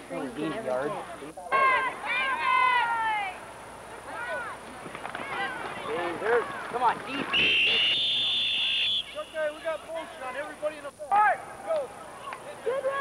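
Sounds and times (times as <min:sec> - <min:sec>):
people shouting: 0:01.5 - 0:03.4, 0:05.2 - 0:09.6
referee's whistle blast: 0:07.2 - 0:09.6.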